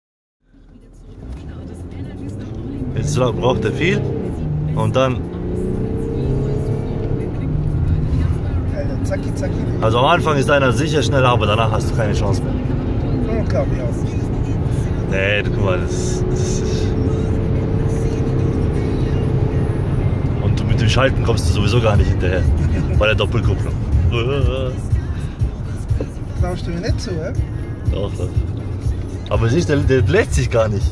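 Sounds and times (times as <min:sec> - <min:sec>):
car engine accelerating hard: 0:00.8 - 0:30.9.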